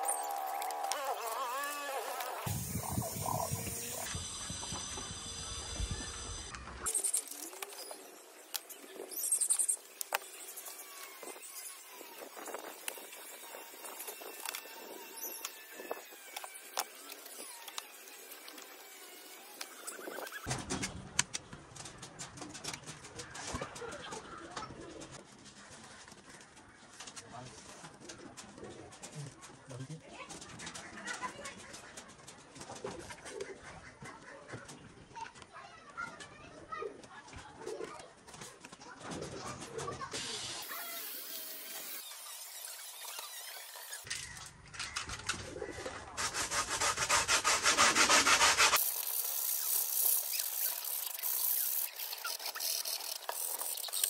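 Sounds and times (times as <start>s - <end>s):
rasping rubbing on foam: 0.3s - 4.2s, 46.2s - 54.0s
hands rubbing foam: 46.2s - 54.0s.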